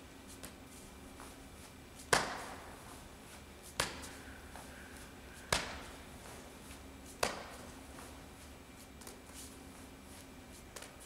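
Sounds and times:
kettlebell swing bursts: 0.0s - 9.6s.

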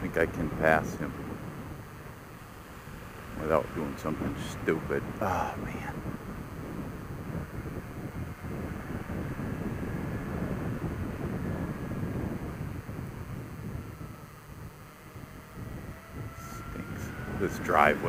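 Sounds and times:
motorcycle engine running: 0.0s - 18.0s
wind rushing over microphone: 0.0s - 18.0s.

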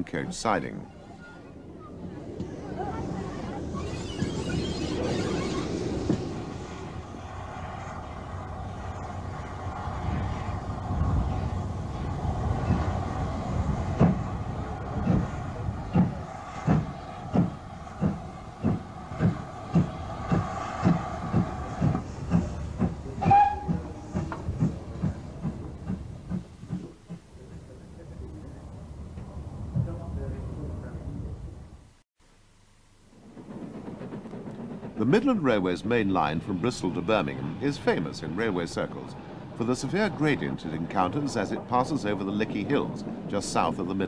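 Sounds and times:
train wheels clacking: 12.5s - 27.7s, 33.2s - 44.0s.

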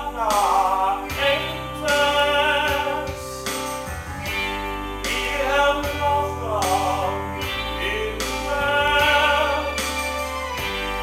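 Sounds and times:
man singing in operatic voice: 0.0s - 3.4s, 5.0s - 10.0s
instrumental backing music: 0.0s - 11.0s.

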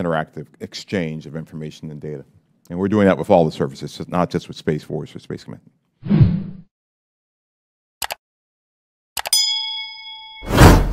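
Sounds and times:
notification bell ding: 9.3s - 10.9s.

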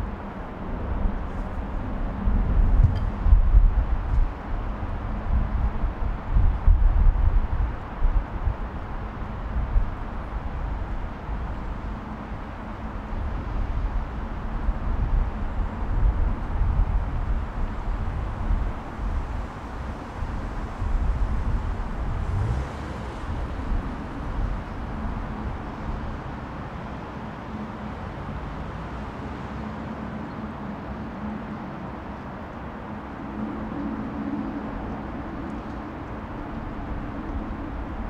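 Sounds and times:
jet engine rumble: 0.0s - 28.5s, 29.6s - 38.0s.

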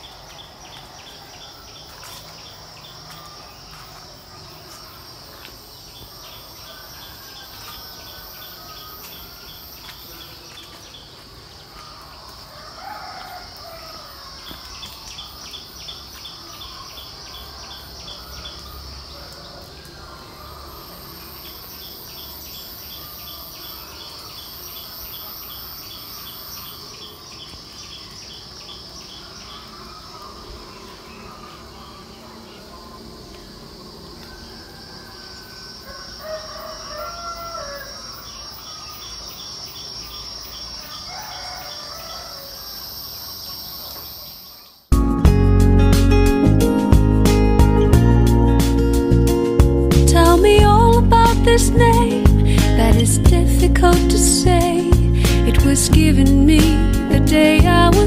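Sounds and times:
insects buzzing: 0.0s - 58.0s.

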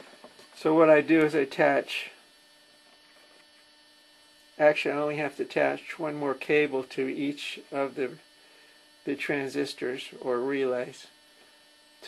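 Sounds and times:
mains hum with hiss: 0.0s - 12.0s
person speaking: 0.6s - 2.2s.

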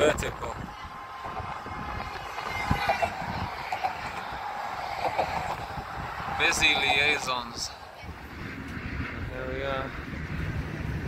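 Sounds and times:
faint pedestrian chatter: 0.0s - 9.4s
highway traffic passing: 0.0s - 11.0s.

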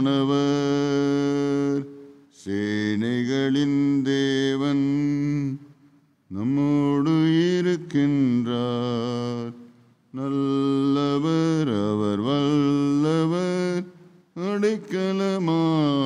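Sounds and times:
man chanting a hymn: 0.0s - 5.6s, 6.3s - 16.0s.

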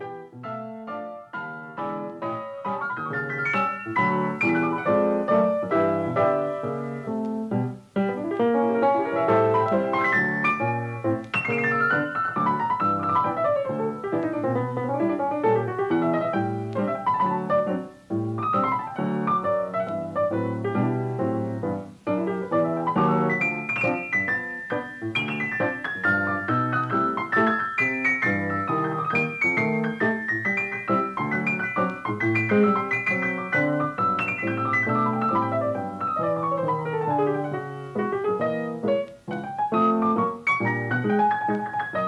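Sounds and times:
piano music: 0.0s - 42.0s.

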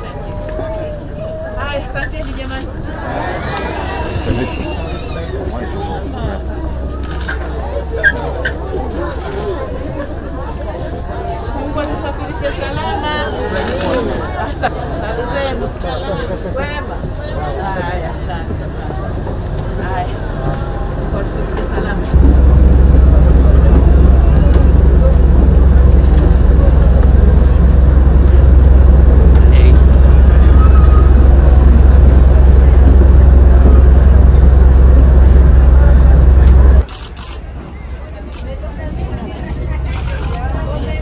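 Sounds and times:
passenger chatter: 0.0s - 41.0s
loud low rumble: 2.7s - 13.2s, 14.9s - 37.4s.

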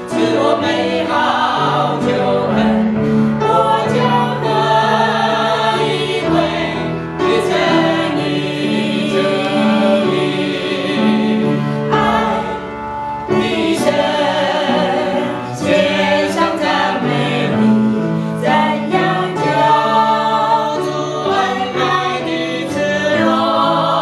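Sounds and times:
group singing a hymn: 0.0s - 24.0s.

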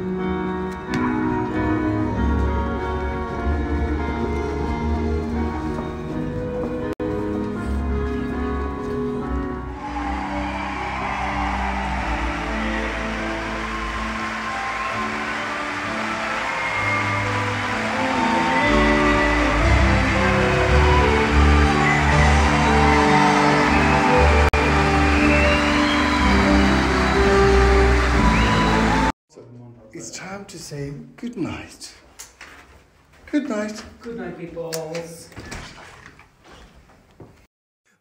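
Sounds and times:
audience applause: 9.7s - 29.1s
live band playing: 12.5s - 29.1s.

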